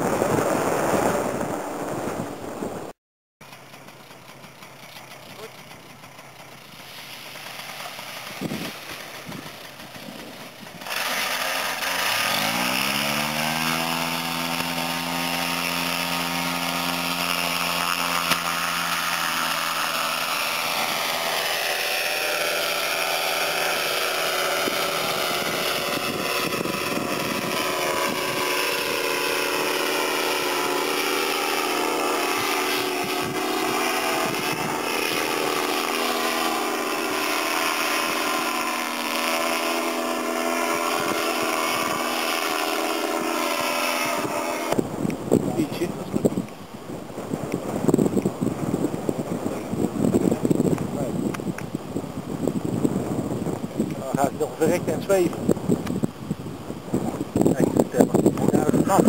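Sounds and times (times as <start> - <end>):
paramotor engine buzzing: 3.4 - 59.0.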